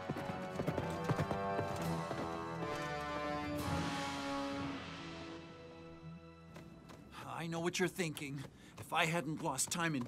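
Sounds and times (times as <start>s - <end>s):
horse hooves on stone steps: 0.0s - 3.4s, 6.5s - 10.0s
background music with held notes: 0.0s - 7.4s.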